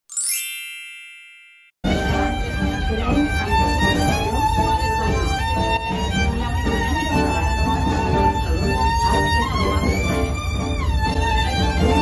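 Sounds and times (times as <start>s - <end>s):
bell-like chime run: 0.0s - 1.8s
music with violin: 1.8s - 12.0s.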